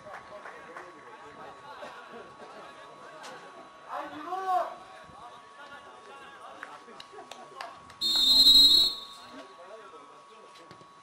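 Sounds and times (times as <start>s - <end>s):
referee's whistle blast: 8.0s - 9.4s.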